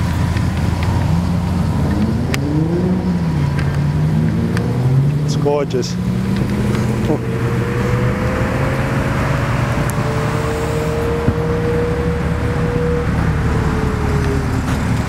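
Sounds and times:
cars driving past: 0:00.0 - 0:15.0
held engine tone: 0:00.0 - 0:15.0
road noise: 0:00.0 - 0:15.0.

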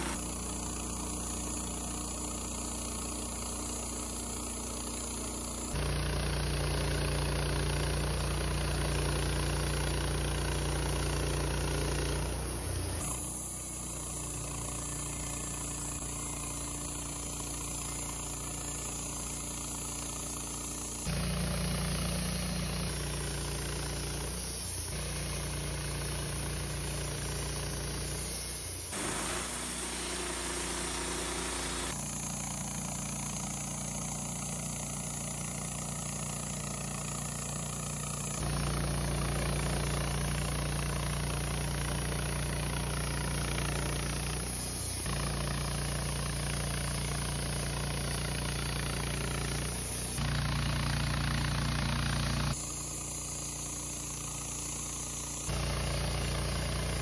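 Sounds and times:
bandsaw sawmill cutting wood: 0:00.0 - 0:28.1, 0:28.9 - 0:57.0.

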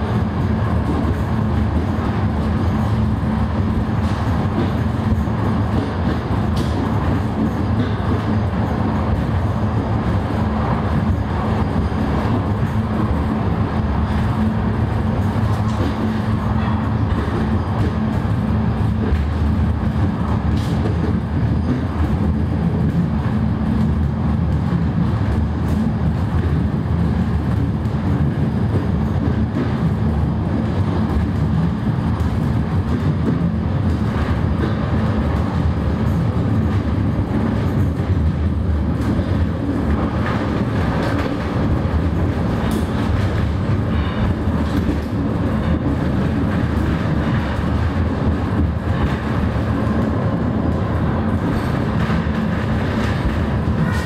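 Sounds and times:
funicular running gear rumbling: 0:00.0 - 0:54.0.

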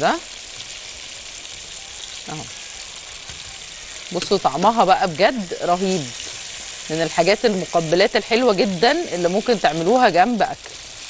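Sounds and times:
tomato slices sizzling in oil: 0:00.0 - 0:11.0.

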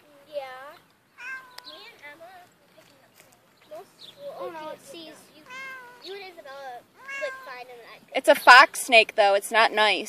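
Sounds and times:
cat meowing: 0:01.2 - 0:01.9, 0:05.4 - 0:06.1, 0:07.0 - 0:07.8.

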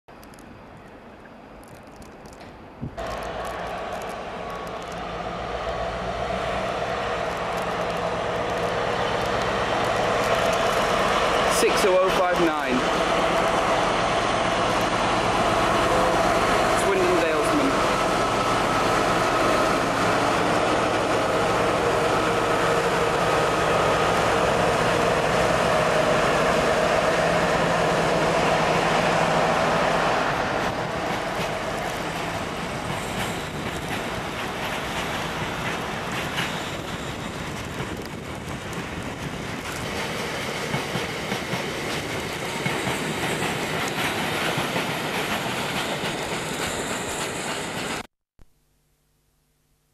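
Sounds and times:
diesel locomotive engine working hard: 0:03.0 - 0:48.1
wheels clacking over rail joints: 0:06.8 - 0:48.0.

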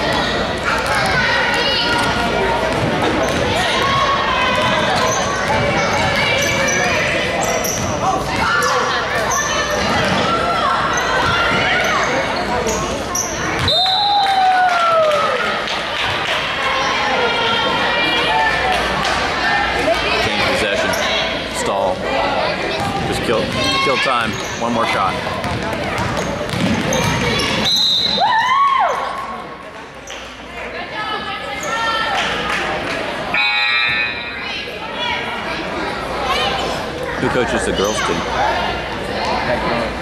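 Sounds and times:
spectators chattering and shouting: 0:00.0 - 0:40.0
shoe squeaks: 0:05.0 - 0:10.0, 0:10.9 - 0:13.7, 0:24.2 - 0:24.7, 0:26.1 - 0:28.2, 0:31.5 - 0:32.0
whistle blast: 0:13.6 - 0:14.3, 0:27.6 - 0:28.3, 0:33.4 - 0:34.4
basketball bouncing on wooden floor: 0:25.4 - 0:27.4.

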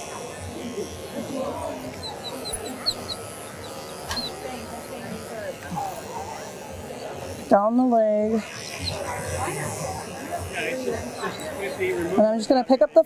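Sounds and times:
electric clipper running: 0:00.0 - 0:13.0
murmur of background voices: 0:00.0 - 0:13.0.

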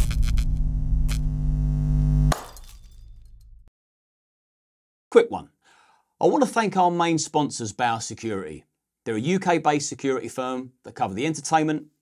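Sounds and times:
low bass drone: 0:00.0 - 0:02.3.

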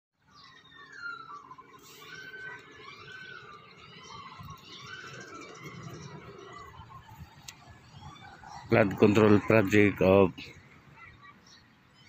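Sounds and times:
birds chirping and whistling: 0:00.2 - 0:12.0
wind rumble on microphone: 0:05.6 - 0:09.8.

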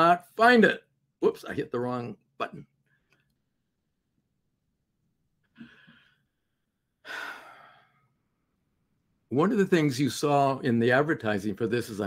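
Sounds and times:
man sighing: 0:05.5 - 0:06.2, 0:07.0 - 0:08.0.

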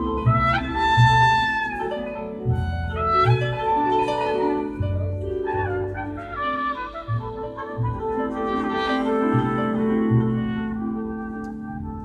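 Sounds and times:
trumpet melody: 0:00.0 - 0:12.0
upright bass plucking: 0:02.4 - 0:11.0.

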